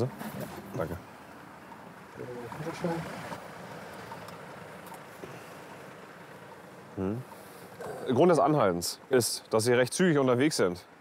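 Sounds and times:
faint road traffic: 0:00.0 - 0:11.0.

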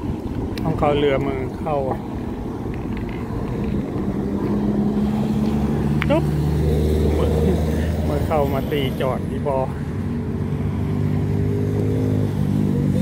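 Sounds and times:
wind rumble on microphone: 0:00.0 - 0:07.2
low engine hum: 0:00.0 - 0:13.0.

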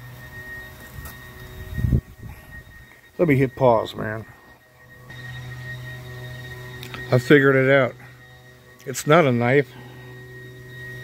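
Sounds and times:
faint higher tones: 0:00.0 - 0:11.0
steady low hum: 0:00.0 - 0:11.0.

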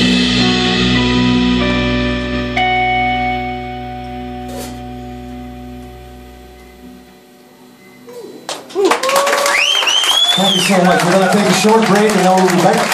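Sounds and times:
electric guitar chord ringing: 0:00.0 - 0:08.6
bass guitar: 0:00.0 - 0:08.8.

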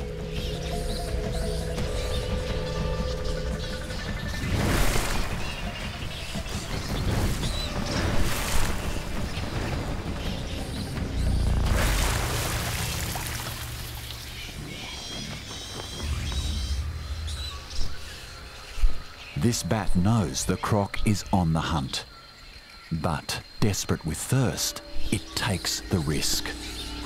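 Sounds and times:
dramatic background music: 0:00.0 - 0:27.0
heavy water splashes: 0:04.4 - 0:14.6.

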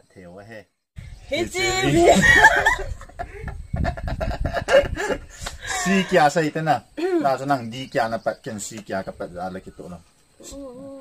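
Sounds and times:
people laughing: 0:01.9 - 0:06.3.

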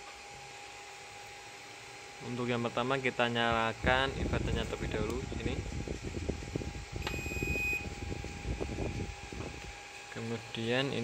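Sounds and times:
faint steady hum: 0:06.2 - 0:11.0
short high beep: 0:07.1 - 0:07.8.

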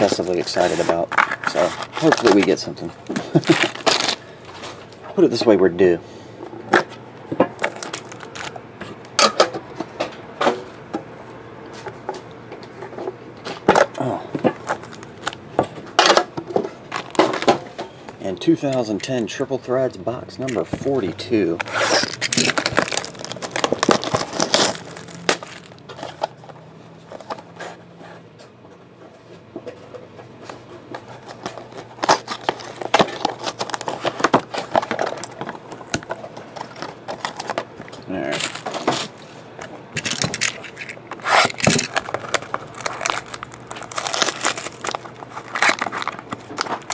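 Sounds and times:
cellophane and cardboard crinkling: 0:00.0 - 0:05.6, 0:07.6 - 0:09.1, 0:13.5 - 0:15.4, 0:16.0 - 0:18.8, 0:20.4 - 0:27.8, 0:30.5 - 0:46.9.

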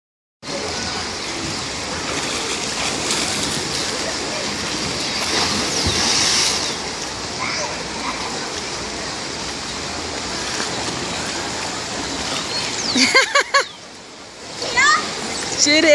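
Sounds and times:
water rushing into pool: 0:00.5 - 0:15.9
splashing: 0:01.8 - 0:09.0.

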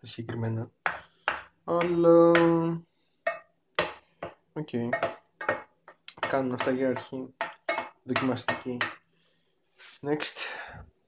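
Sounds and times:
wooden spoon stirring in bowl: 0:00.2 - 0:09.0.

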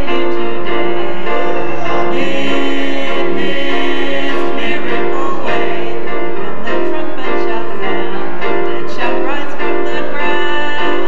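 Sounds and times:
vocal quartet singing in harmony: 0:00.0 - 0:11.0.

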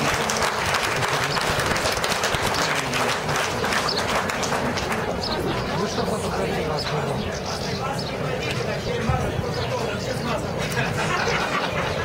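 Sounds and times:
crowd applauding: 0:00.0 - 0:05.8.

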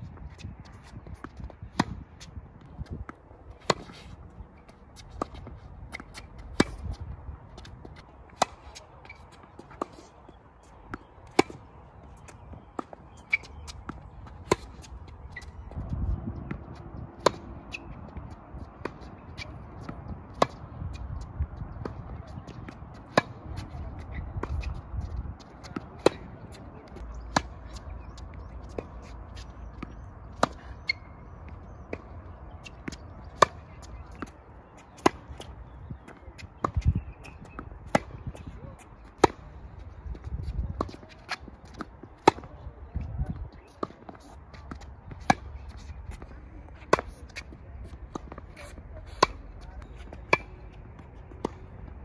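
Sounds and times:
tennis ball bouncing on court: 0:00.1 - 0:52.0
tennis ball hitting racket: 0:00.3 - 0:43.0, 0:43.7 - 0:51.9.

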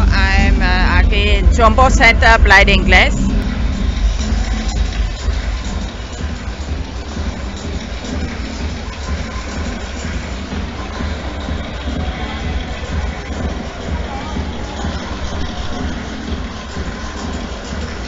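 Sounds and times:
electronic dance music: 0:00.0 - 0:18.0.

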